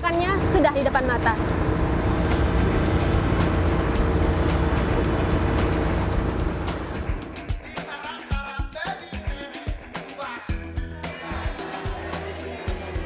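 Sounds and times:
boat engine running: 0:00.0 - 0:07.5
water noise: 0:00.0 - 0:07.5
music: 0:00.0 - 0:13.0.

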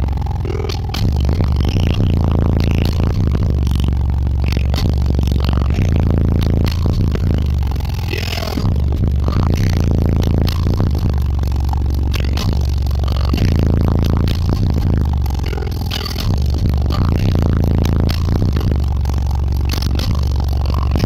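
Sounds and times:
bass-heavy rap music: 0:00.0 - 0:21.0
truck body rattling and buzzing: 0:00.0 - 0:21.0.

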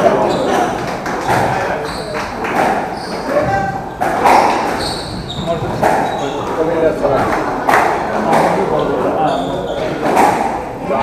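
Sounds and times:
shoes squeaking on wooden floor: 0:00.0 - 0:10.4
murmur of voices: 0:00.0 - 0:11.0
squash ball smacking: 0:02.3 - 0:06.6, 0:10.0 - 0:10.7.

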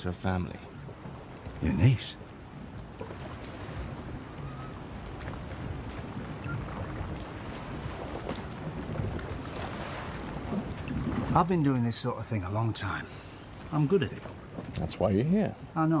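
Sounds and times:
sea and wind wash: 0:00.0 - 0:16.0
faint wooden creaks and ticks: 0:13.3 - 0:15.8.

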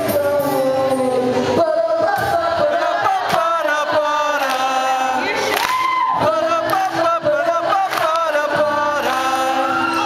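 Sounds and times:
keyboard: 0:00.0 - 0:10.0
voices singing: 0:00.0 - 0:10.0
sharp hand claps: 0:05.5 - 0:05.9, 0:07.8 - 0:08.3.

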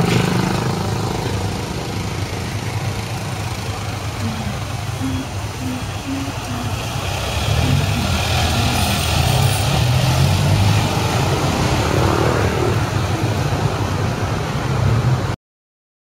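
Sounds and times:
scooters and cars passing: 0:00.0 - 0:15.4.

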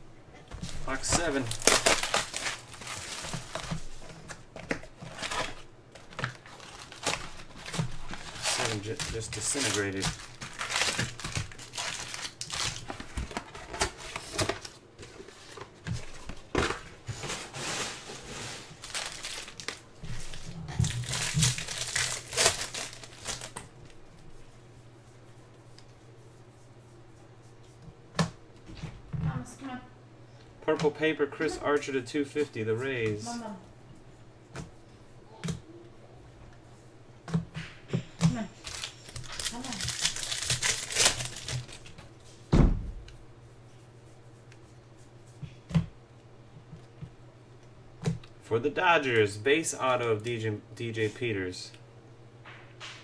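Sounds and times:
foil packs crinkling: 0:00.6 - 0:23.8, 0:38.5 - 0:42.0
shrink wrap tearing and crumpling: 0:00.8 - 0:04.1, 0:04.7 - 0:14.8, 0:17.3 - 0:23.7, 0:38.5 - 0:42.0.

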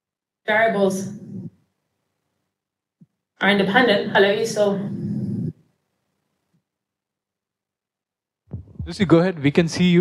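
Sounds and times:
person speaking: 0:08.5 - 0:10.0.

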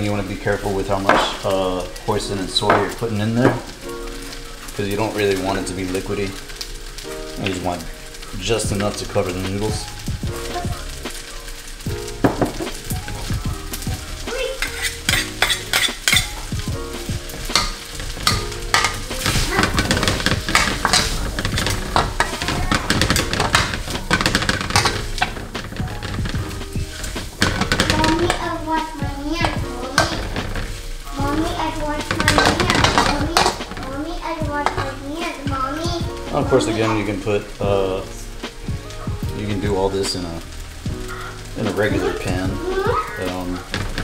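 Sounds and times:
noodles sizzling in a wok: 0:00.0 - 0:44.0.

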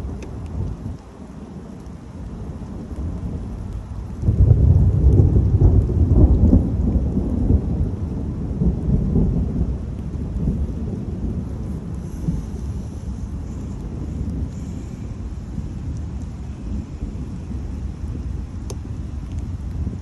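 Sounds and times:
thunder rumbling: 0:00.0 - 0:20.0.

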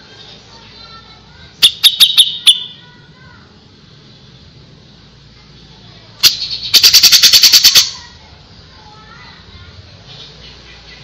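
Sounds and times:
bird rattling call: 0:06.2 - 0:08.0.

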